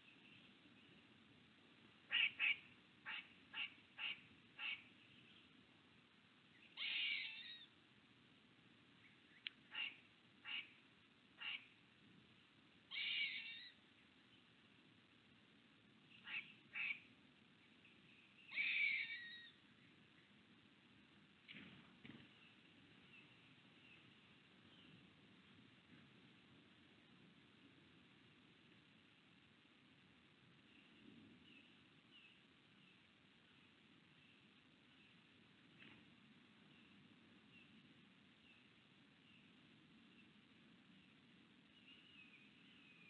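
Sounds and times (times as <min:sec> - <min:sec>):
faint outdoor background: 0:00.0 - 0:43.0.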